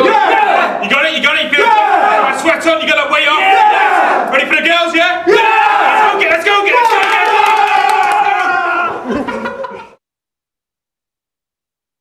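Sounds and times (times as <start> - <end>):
men shouting together: 0.0 - 2.6, 3.2 - 4.4, 5.2 - 9.2.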